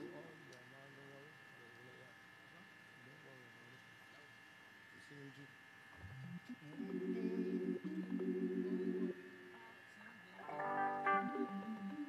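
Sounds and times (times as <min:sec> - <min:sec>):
faint voices: 0:00.0 - 0:04.4, 0:06.3 - 0:12.0
faint electrical buzz: 0:00.0 - 0:12.0.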